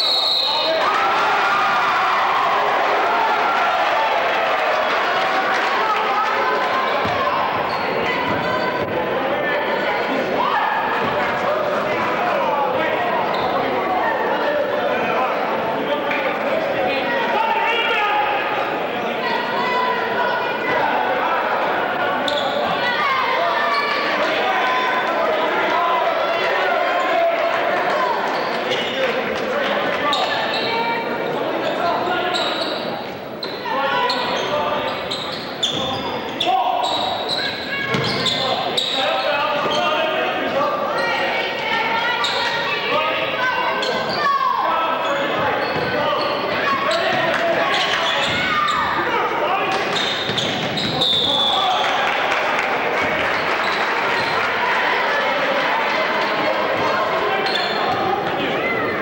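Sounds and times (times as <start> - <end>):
voices echoing in gym: 0.0 - 59.0.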